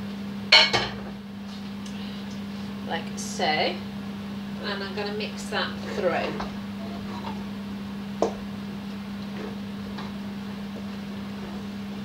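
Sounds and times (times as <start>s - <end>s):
low hum: 3.7s - 12.0s.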